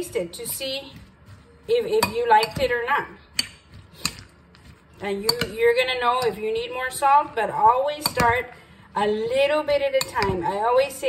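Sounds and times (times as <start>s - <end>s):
spoon stirring in ceramic bowl: 0.0s - 11.0s.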